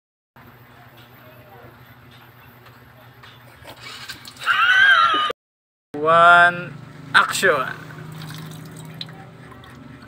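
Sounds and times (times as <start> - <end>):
low background hum: 6.0 - 10.0.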